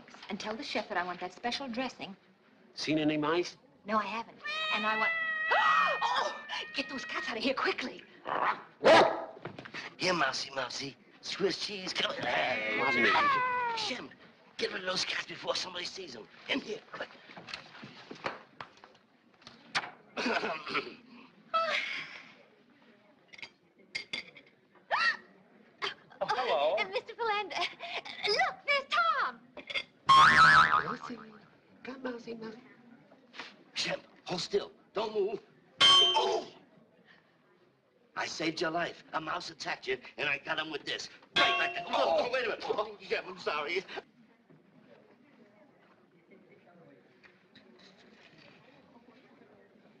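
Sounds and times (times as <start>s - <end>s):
cats yowling: 4.4s - 7.2s
wavering comedy tone: 30.1s - 31.3s.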